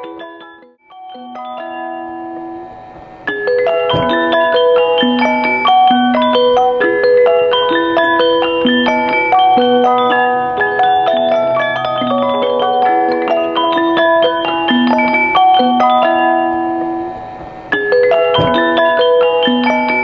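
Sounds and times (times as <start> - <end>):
music box tinkling melody: 0.0 - 20.0.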